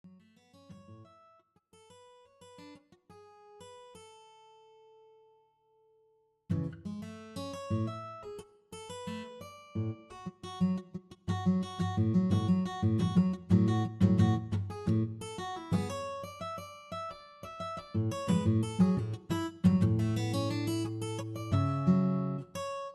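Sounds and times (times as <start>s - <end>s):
guitar plucked and strummed: 0.1s - 5.9s, 6.5s - 22.9s.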